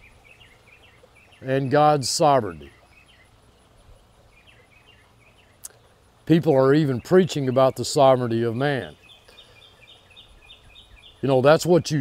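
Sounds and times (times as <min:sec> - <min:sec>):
bird chirping: 0:00.0 - 0:12.0
outdoor background noise: 0:00.0 - 0:12.0.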